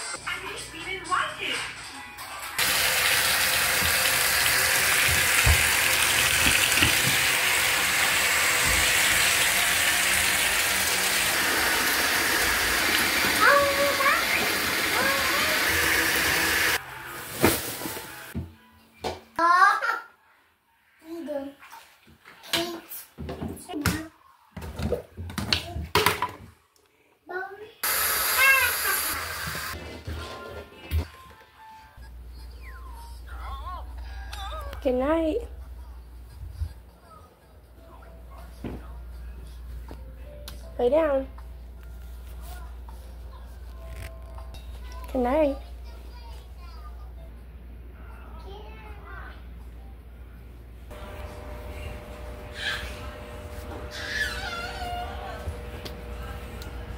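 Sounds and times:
tap water running into sink: 0:02.6 - 0:16.8.

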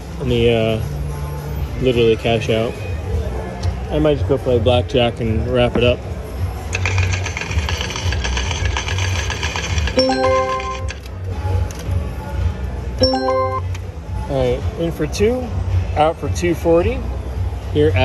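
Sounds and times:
low casino hum: 0:06.1 - 0:11.4, 0:12.8 - 0:14.1
multi-note alert chime: 0:10.0 - 0:11.0, 0:13.0 - 0:13.8.

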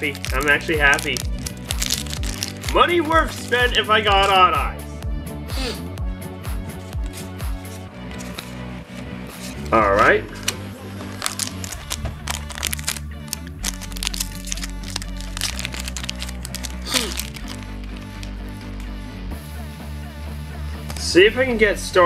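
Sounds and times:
wrapper being torn open: 0:00.0 - 0:03.5, 0:10.3 - 0:18.8
background music: 0:00.0 - 0:22.0.

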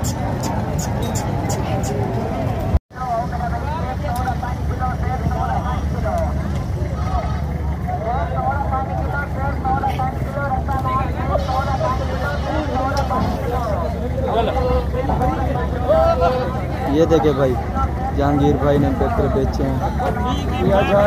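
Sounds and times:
indistinct voices talking: 0:00.0 - 0:21.0.

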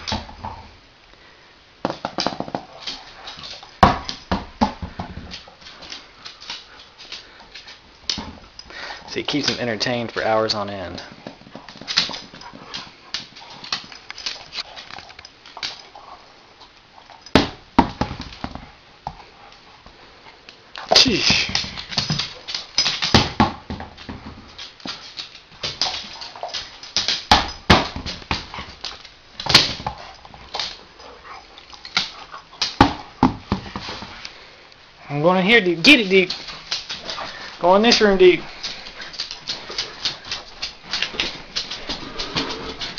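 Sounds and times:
dog claws clicking on wooden floor: 0:01.8 - 0:16.1, 0:20.8 - 0:34.1, 0:35.9 - 0:42.9.

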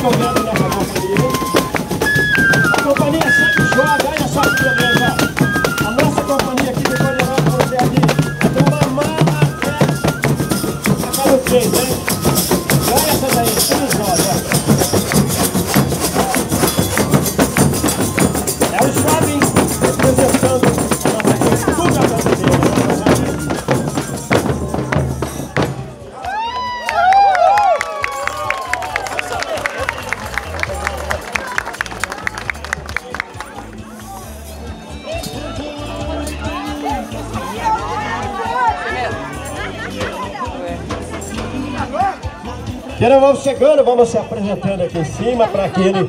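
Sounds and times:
flute melody: 0:00.0 - 0:25.6, 0:34.0 - 0:38.7
frame drum beating: 0:00.0 - 0:26.1
bass drums beating: 0:00.0 - 0:26.5, 0:34.6 - 0:43.5
tambourine jingles: 0:00.2 - 0:25.6
people singing: 0:35.0 - 0:43.0.

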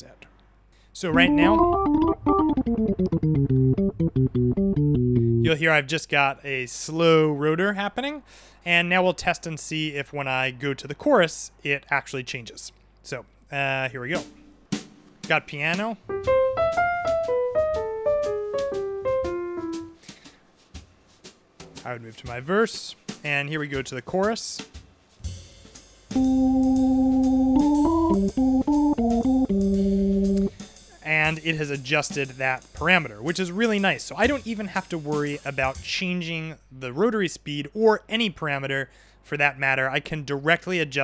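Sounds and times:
tonewheel organ playing: 0:01.1 - 0:05.5, 0:16.1 - 0:20.0, 0:26.2 - 0:30.5
piano run of notes: 0:01.1 - 0:05.6, 0:16.0 - 0:20.0, 0:26.2 - 0:30.5.

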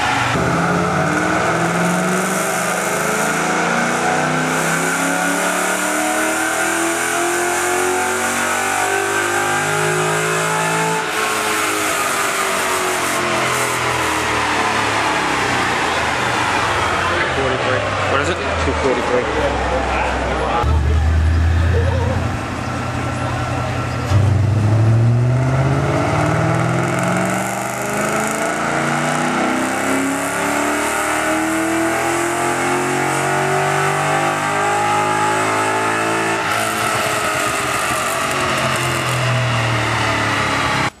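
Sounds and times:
car engine revving on dyno: 0:00.0 - 0:41.0.

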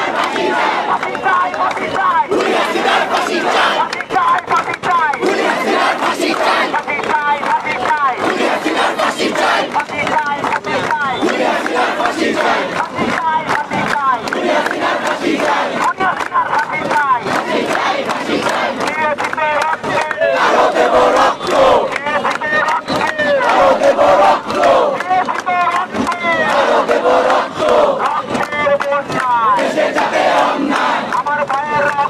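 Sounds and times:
crowd shouting together: 0:00.0 - 0:31.3.

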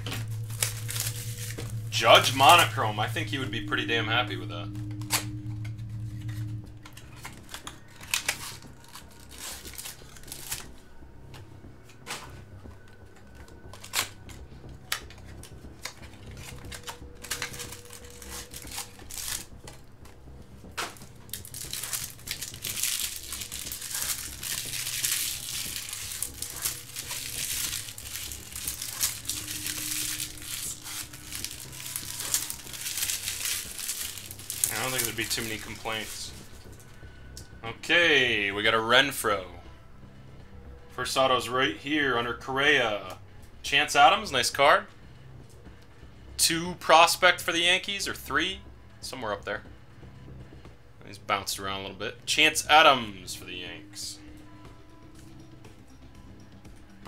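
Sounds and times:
card wrappers crinkling and tearing: 0:00.0 - 0:10.9, 0:13.2 - 0:20.1, 0:20.8 - 0:36.8.

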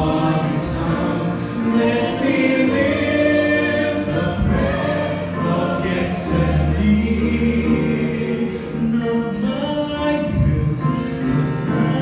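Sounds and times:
group singing in harmony: 0:00.0 - 0:12.0.

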